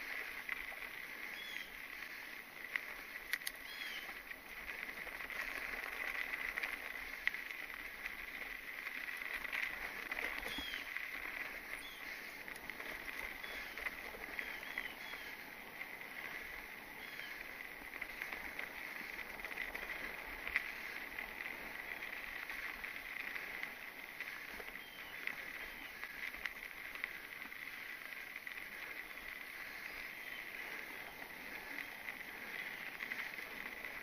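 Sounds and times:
bike tyres rolling on dirt: 0:00.0 - 0:34.0
bird chirps: 0:01.3 - 0:01.8, 0:03.6 - 0:04.1, 0:10.5 - 0:10.9, 0:14.4 - 0:15.3, 0:24.8 - 0:25.9.

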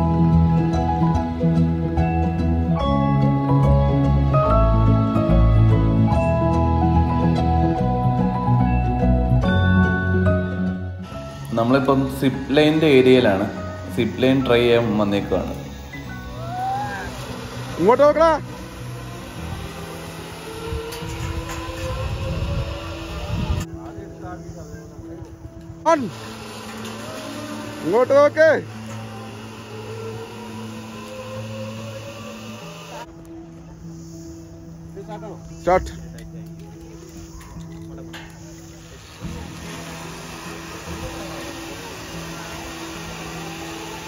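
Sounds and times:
zipline trolley jolt: 0:11.0 - 0:23.7, 0:25.9 - 0:33.1, 0:36.8 - 0:44.0
pulley rolling along steel cable: 0:13.9 - 0:23.7, 0:26.1 - 0:33.1.

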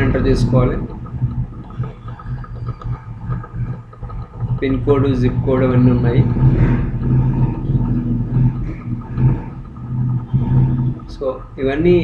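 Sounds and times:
low hum with rumble: 0:00.0 - 0:12.0.

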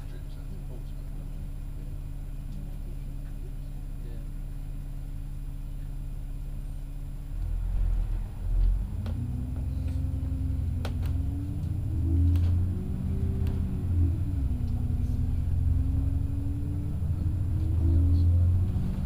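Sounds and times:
bus engine accelerating: 0:00.0 - 0:19.0.

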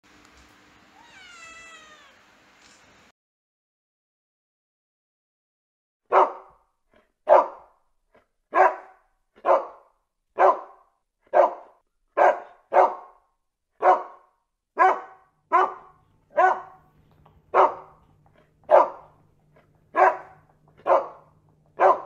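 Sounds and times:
dog barking: 0:06.1 - 0:07.8, 0:08.5 - 0:16.9, 0:17.5 - 0:18.0, 0:18.6 - 0:19.2, 0:19.9 - 0:22.0.

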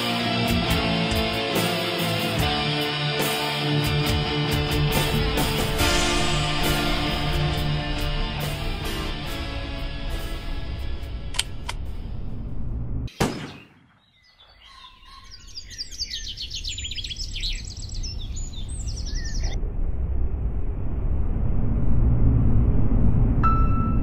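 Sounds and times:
soundtrack music: 0:00.0 - 0:12.6
low rumble: 0:04.3 - 0:13.1, 0:16.7 - 0:24.0
songbirds chirping trills: 0:13.6 - 0:19.6.

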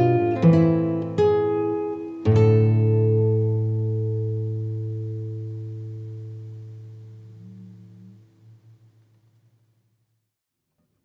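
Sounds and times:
acoustic guitar chord ringing: 0:00.0 - 0:09.0.

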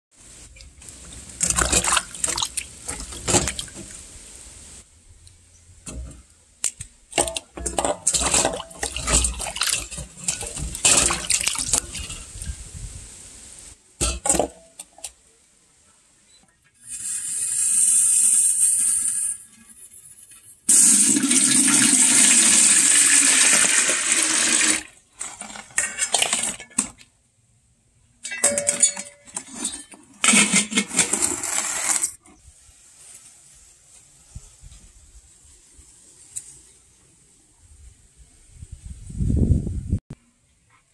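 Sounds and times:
water splashing in bowl: 0:00.6 - 0:04.1, 0:06.6 - 0:12.6
steady hiss: 0:03.8 - 0:05.7, 0:12.0 - 0:14.0, 0:16.8 - 0:19.8, 0:32.4 - 0:39.0
water pouring into kettle: 0:20.7 - 0:26.5.

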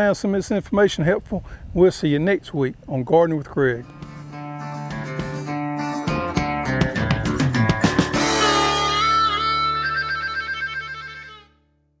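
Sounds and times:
background music held chord: 0:03.9 - 0:11.8.

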